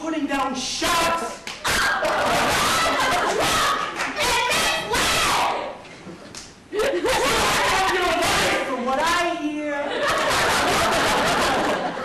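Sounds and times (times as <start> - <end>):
people shouting in argument: 1.7 - 5.7, 7.2 - 8.6.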